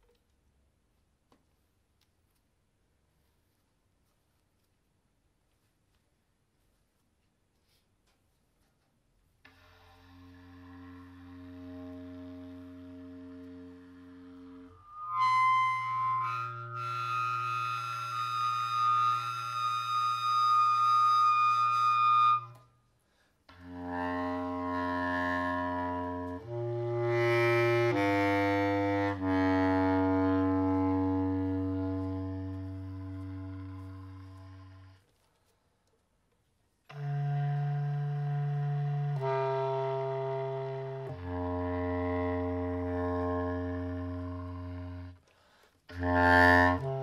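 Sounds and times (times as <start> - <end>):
bass clarinet held notes: 9.5 - 22.7, 23.5 - 35.0, 36.9 - 45.3, 45.9 - 47.0.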